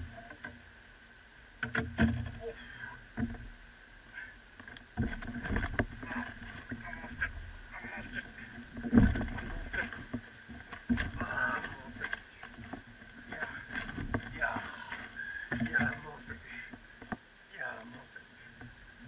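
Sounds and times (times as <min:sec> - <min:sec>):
thumps against boat hull and deck: 0:05.0 - 0:07.4, 0:08.1 - 0:12.8.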